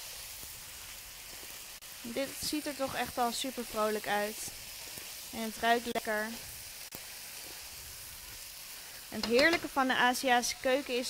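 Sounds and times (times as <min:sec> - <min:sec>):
food sizzling in a hot wok: 0:00.0 - 0:11.0.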